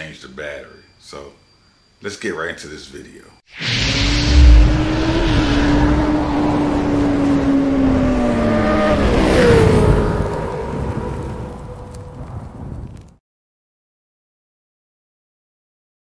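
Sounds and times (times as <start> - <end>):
sweeping rush: 3.5 - 10.8.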